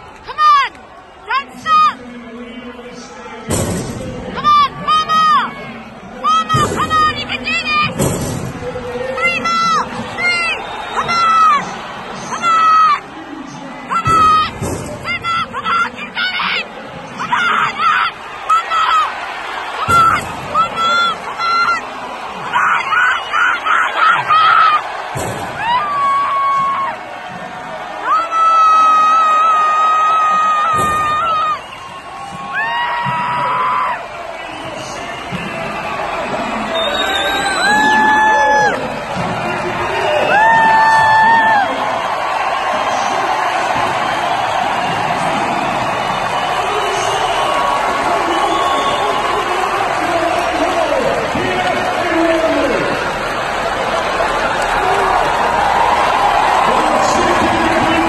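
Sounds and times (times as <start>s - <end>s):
crowd yelling and cheering: 0.0s - 58.0s.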